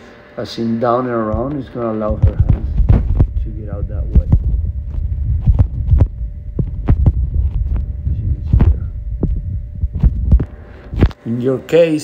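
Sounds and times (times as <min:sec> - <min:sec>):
sharp knocks: 0:01.3 - 0:04.6
low rumble: 0:02.1 - 0:11.1.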